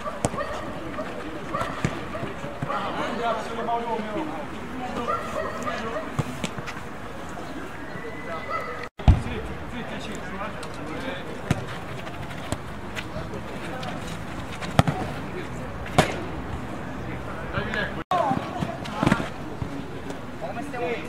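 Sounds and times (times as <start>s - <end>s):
distant players' voices: 0.0s - 21.0s.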